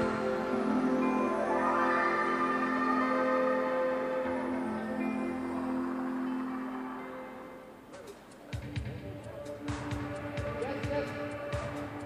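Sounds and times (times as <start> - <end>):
ambient music of held tones: 0.0 - 12.0.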